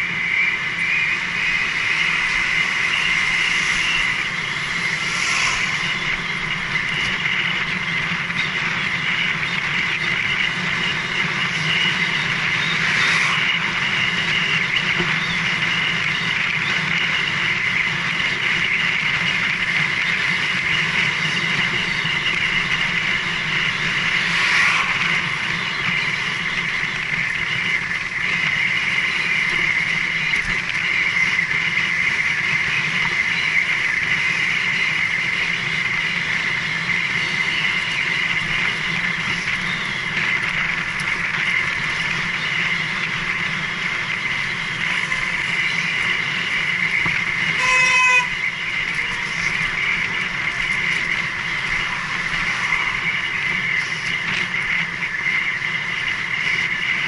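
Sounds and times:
wind rushing: 0.0s - 8.3s, 11.4s - 15.1s, 22.1s - 29.0s, 49.7s - 55.0s
bicycle tyre noise: 0.0s - 57.0s
horn toot: 47.5s - 48.5s.

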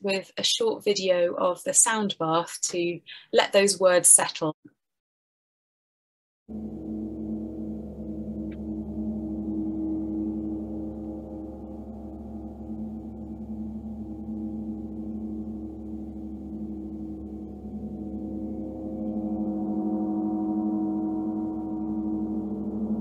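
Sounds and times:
shimmering gong drone: 6.5s - 23.0s.

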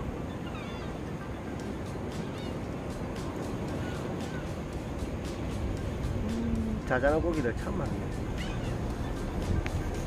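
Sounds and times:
sea waves on rocky shore: 0.0s - 10.0s.

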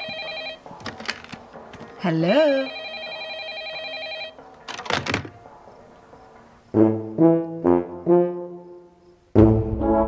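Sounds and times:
telephone ringing: 0.0s - 5.4s
handset clattering onto base: 0.8s - 2.0s, 4.5s - 5.4s.

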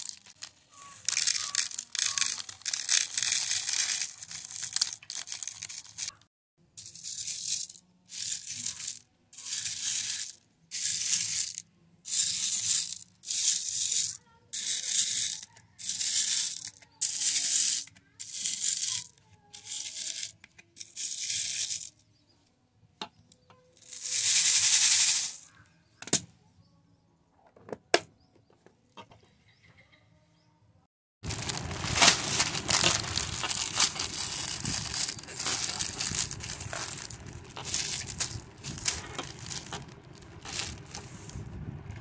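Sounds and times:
beads rattling in plastic box: 0.0s - 6.2s, 6.8s - 21.9s, 23.8s - 25.5s, 31.2s - 41.5s.

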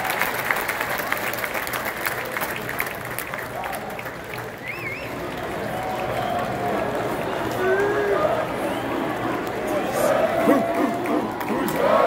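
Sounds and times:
crowd cheering and clapping: 0.0s - 12.0s.

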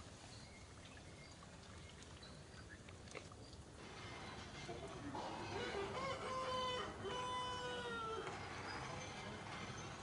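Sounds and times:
rooster crowing: 5.5s - 8.3s.

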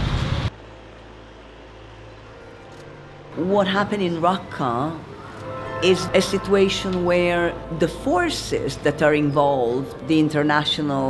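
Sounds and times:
street noise with vehicle rumble: 0.0s - 11.0s.

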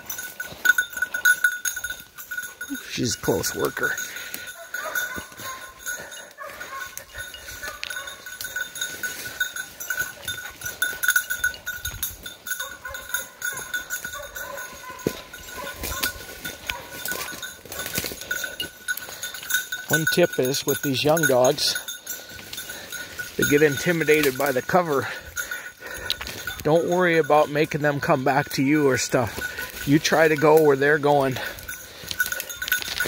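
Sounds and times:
brush rustling: 0.0s - 24.8s, 25.4s - 33.0s
dog collar bell jingling: 0.0s - 33.0s
footsteps in brush: 4.0s - 19.8s, 28.9s - 33.0s.

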